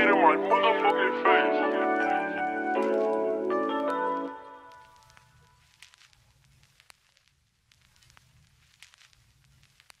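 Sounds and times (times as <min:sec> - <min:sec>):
vinyl crackles and clicks: 0:00.0 - 0:10.0.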